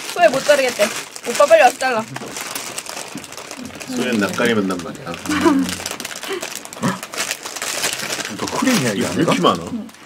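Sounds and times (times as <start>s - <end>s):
crinkling rustling noise: 0.0s - 10.0s
person speaking: 3.6s - 6.4s
person laughing: 5.2s - 6.5s.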